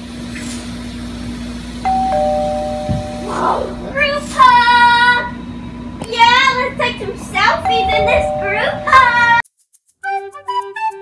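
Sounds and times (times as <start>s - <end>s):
steady low hum: 1.1s - 9.4s
child's high-pitched note: 2.8s - 4.0s, 7.6s - 9.4s
children's voices: 3.2s - 5.4s.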